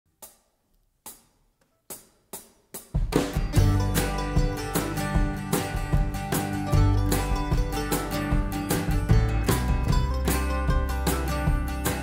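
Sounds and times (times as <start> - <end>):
drumstick count-in taps: 0.2 - 12.0
country band playing: 3.1 - 12.0.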